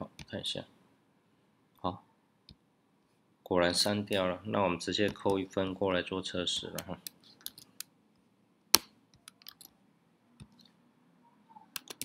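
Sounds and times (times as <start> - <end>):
computer mouse and keyboard clicks: 6.7 - 7.9, 8.8 - 9.7, 10.4 - 10.8, 11.7 - 12.0.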